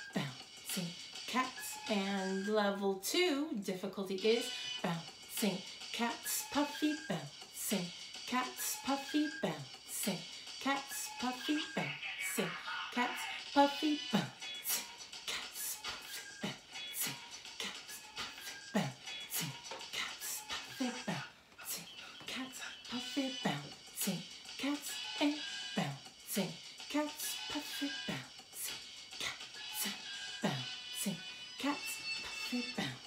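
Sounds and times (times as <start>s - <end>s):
woman chanting: 0.0s - 33.0s
beatboxing: 14.1s - 25.4s.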